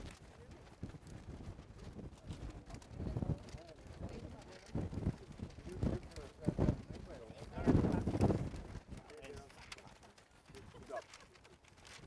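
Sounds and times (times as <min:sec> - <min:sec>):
wind rumble on microphone: 0:00.0 - 0:10.9.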